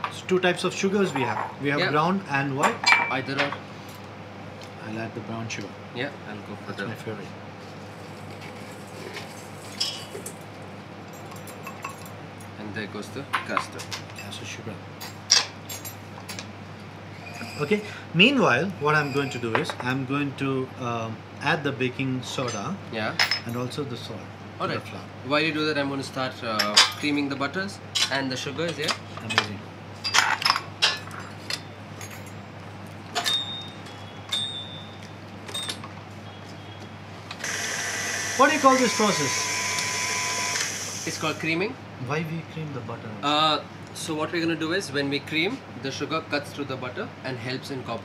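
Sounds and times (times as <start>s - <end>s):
low room hum: 0.0s - 48.0s
kitchen bowls clinking: 2.6s - 3.6s.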